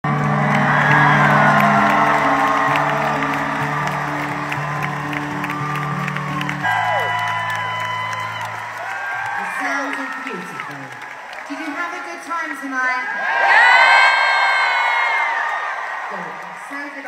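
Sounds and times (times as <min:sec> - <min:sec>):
live band sustained chords: 0:00.0 - 0:08.8
crowd cheering and whistling: 0:00.0 - 0:11.5, 0:13.2 - 0:16.5.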